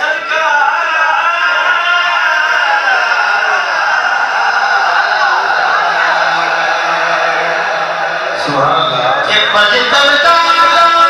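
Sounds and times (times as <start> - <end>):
man singing over loudspeaker: 0.0 - 11.0.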